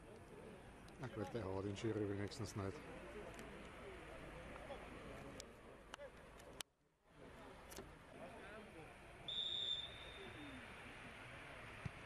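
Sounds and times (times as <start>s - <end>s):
referee's whistle blast: 9.3s - 10.4s.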